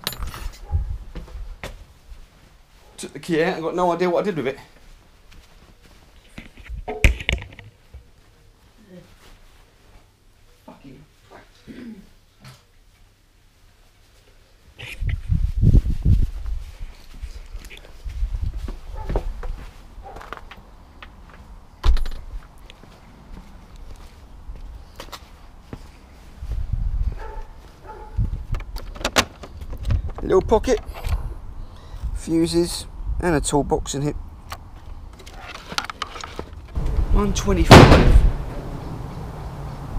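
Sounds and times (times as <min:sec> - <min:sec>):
camera handling thumps and rustles: 0:06.3 - 0:07.8, 0:35.1 - 0:36.8.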